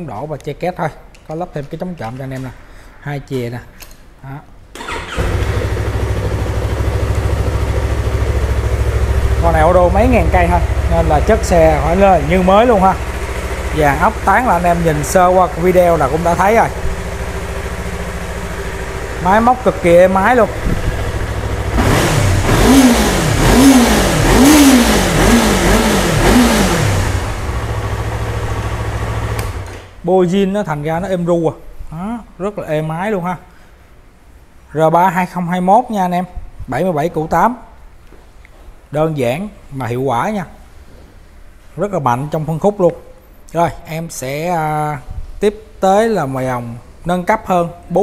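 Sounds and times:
electric starter: 0:04.8 - 0:07.8, 0:21.7 - 0:29.9
motorcycle engine idling: 0:04.8 - 0:29.6.

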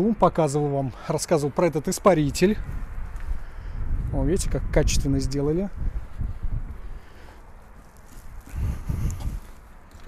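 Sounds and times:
low rumble on microphone: 0:02.2 - 0:09.8
footsteps on flat roof: 0:07.4 - 0:10.0.

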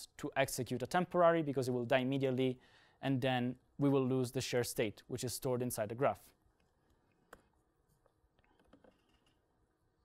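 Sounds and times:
man speaking: 0:00.0 - 0:06.4.

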